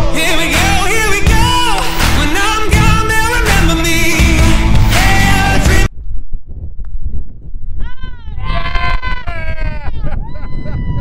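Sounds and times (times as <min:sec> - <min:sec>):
wind rumbling on microphone: 0:02.5 - 0:11.0
person exclaiming ooh: 0:07.8 - 0:11.0.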